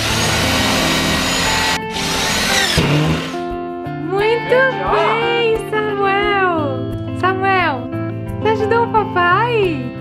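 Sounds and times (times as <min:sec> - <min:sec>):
cordless drill driving a screw: 0:00.0 - 0:03.4.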